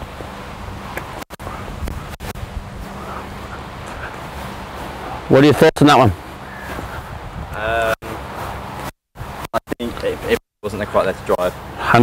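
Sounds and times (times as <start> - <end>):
wind buffeting the microphone: 0.0 - 5.3, 6.1 - 10.3.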